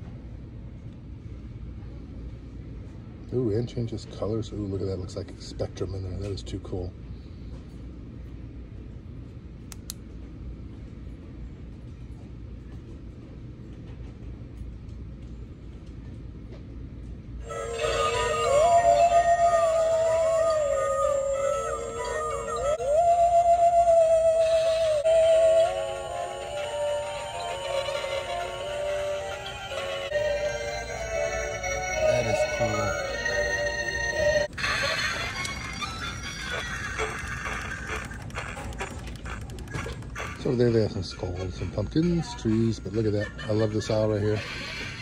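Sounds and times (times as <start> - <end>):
spooky electronic tune: 17.4 - 40.7.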